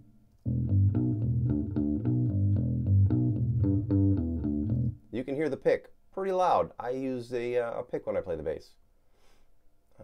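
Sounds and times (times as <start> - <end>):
electric bass picked notes: 0.4 - 5.0.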